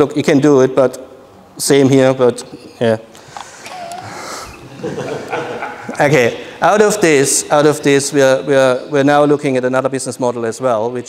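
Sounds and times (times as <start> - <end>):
roomful of people laughing: 3.6 - 6.6
man laughing: 3.7 - 6.4.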